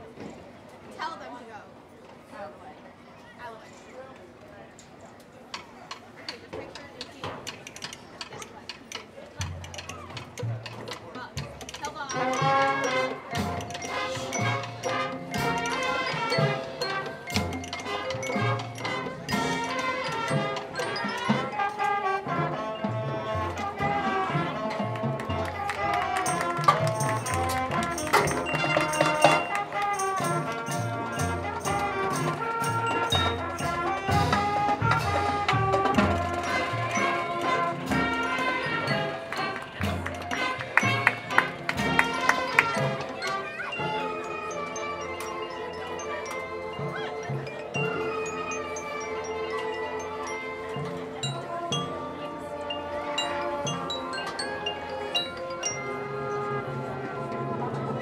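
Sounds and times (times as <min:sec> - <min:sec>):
marching drumline: 0:09.4 - 0:43.5
brass chords: 0:12.1 - 0:45.2.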